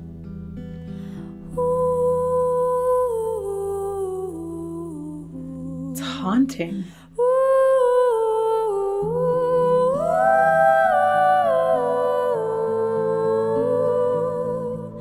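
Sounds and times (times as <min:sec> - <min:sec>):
woman singing wordless melody: 0:01.4 - 0:15.0.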